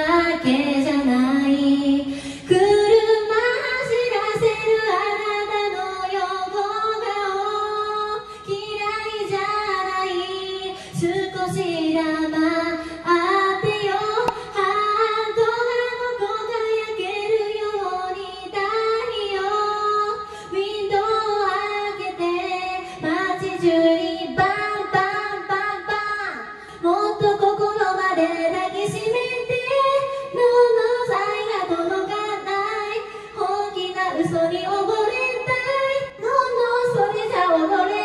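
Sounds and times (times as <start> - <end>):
woman singing into microphone: 0.0 - 38.0.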